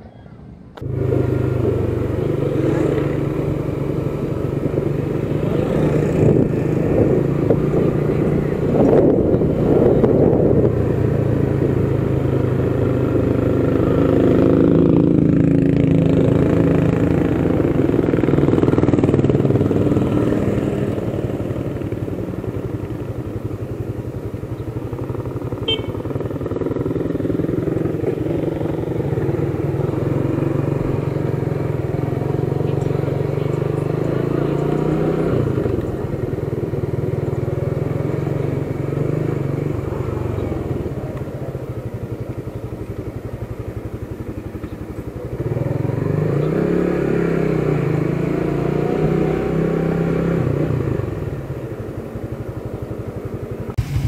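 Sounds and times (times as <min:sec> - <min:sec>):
motorcycle engine running: 0:00.8 - 0:54.0.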